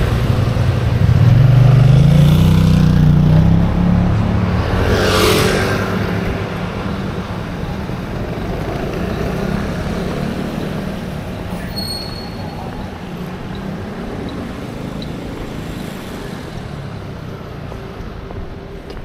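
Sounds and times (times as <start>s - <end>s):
scooter and car engines: 0.0s - 19.0s
high-pitched squeal: 11.5s - 15.2s.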